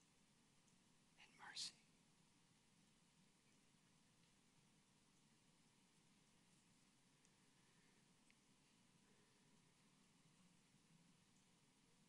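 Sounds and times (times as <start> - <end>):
man whispering close to microphone: 1.2 - 1.8.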